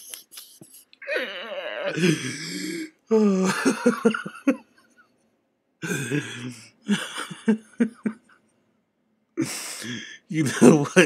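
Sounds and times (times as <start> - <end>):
person speaking: 0.0 - 1.3, 9.4 - 11.0
man laughing: 1.9 - 2.5, 3.1 - 4.6, 5.8 - 8.2, 10.4 - 11.0.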